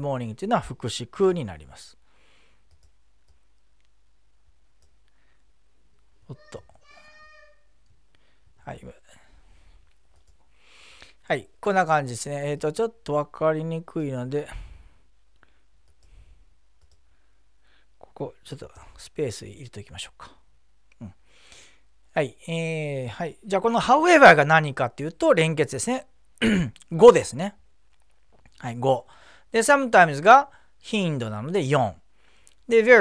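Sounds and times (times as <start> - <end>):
computer mouse clicks: 2.6 - 3.9, 15.8 - 16.1, 16.8 - 17.0.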